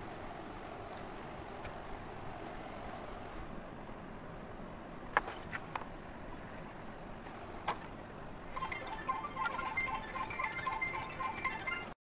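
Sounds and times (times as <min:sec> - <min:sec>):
faint tinkling chime tones: 0:08.5 - 0:11.9.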